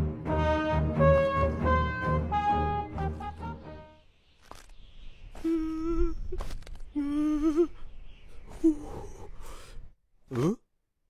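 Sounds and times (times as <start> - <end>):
person humming: 5.4 - 7.8, 8.5 - 9.4, 10.3 - 10.6.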